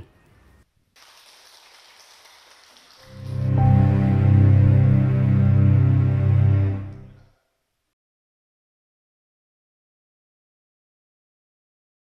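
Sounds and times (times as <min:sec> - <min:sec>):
faint applause: 0:01.0 - 0:04.7.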